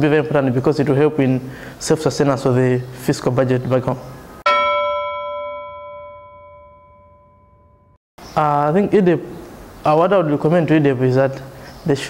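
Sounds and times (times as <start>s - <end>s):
bell-like chime: 4.5s - 8.0s.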